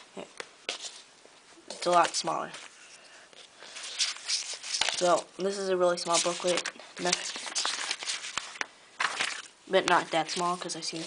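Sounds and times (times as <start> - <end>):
paper booklet rustling: 1.7 - 11.0.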